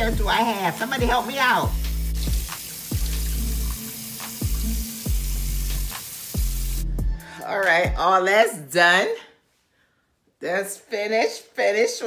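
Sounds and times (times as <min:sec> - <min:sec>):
faucet water splashing into sink: 0:00.0 - 0:06.8
music with deep bass beat: 0:01.7 - 0:07.2.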